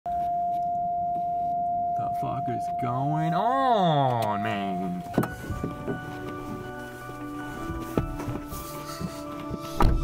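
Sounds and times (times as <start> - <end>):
parking sensor continuous tone: 0.1 - 10.0.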